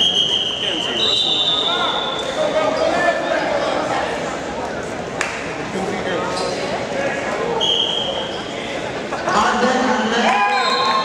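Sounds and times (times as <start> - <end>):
referee's whistle: 0.0 - 2.3, 7.6 - 8.2, 10.4 - 11.0.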